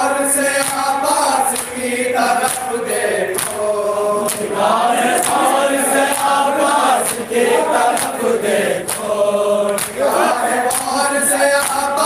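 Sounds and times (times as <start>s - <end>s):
men chanting a lament: 0.0s - 12.0s
hands slapping chest: 0.6s - 0.9s, 2.4s - 2.7s, 3.4s - 3.6s, 4.2s - 4.6s, 5.2s - 6.4s, 7.0s - 7.3s, 7.9s - 8.2s, 8.8s - 11.0s.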